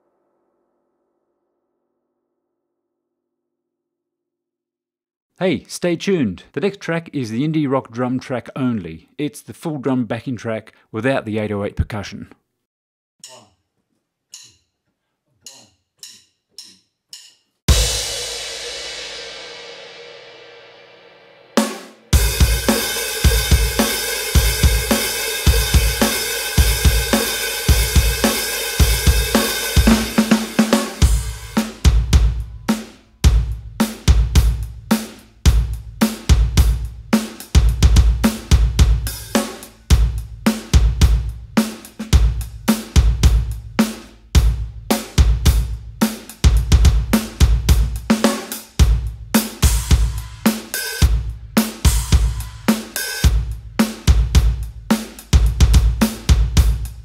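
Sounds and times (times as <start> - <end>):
count-in ticks: 14.3 - 14.7, 15.4 - 17.4
drum kit rock beat: 15.5 - 20.6, 21.4 - 57.0
crash cymbal: 17.7 - 33.1, 49.4 - 53.3.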